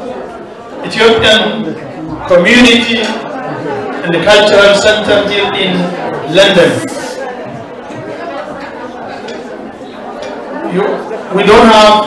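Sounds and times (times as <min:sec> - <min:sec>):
audience chatter: 0:00.0 - 0:12.0
man speaking into a microphone: 0:00.8 - 0:03.3, 0:03.9 - 0:07.2, 0:10.7 - 0:12.0.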